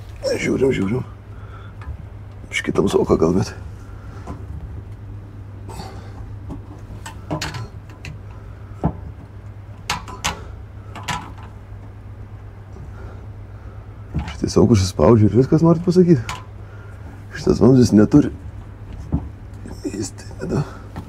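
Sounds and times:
steady low hum: 0.0 - 21.0
clicks and knocks on pipe: 6.2 - 11.6, 14.1 - 14.5, 15.8 - 16.5.

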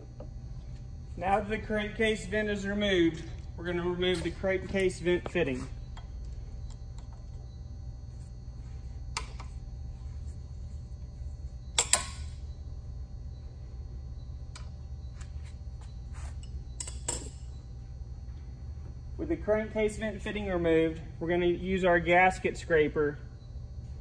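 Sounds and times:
low hum: 0.0 - 24.0.

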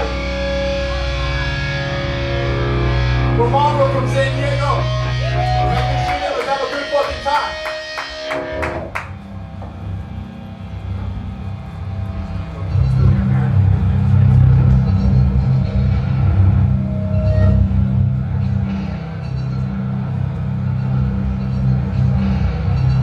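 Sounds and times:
amplifier droning rumble: 0.0 - 23.0.

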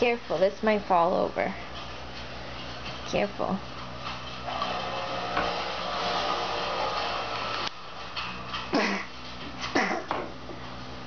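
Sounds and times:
machine whirring hum: 0.0 - 11.0.

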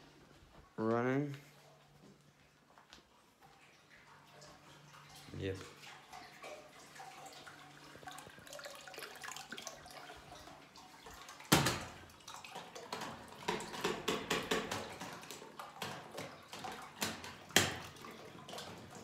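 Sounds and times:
water trickling into toilet: 1.5 - 19.0.

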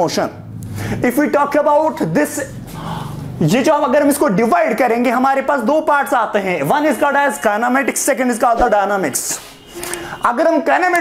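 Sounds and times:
man lecturing: 1.0 - 11.0.

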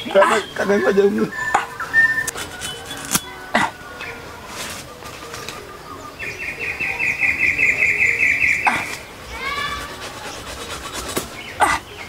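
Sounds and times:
high pulsed trilling call: 0.0 - 4.3, 5.3 - 12.0.

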